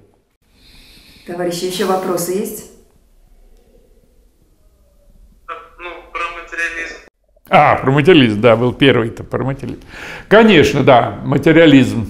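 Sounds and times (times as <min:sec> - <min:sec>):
person speaking: 0:05.5 - 0:11.2.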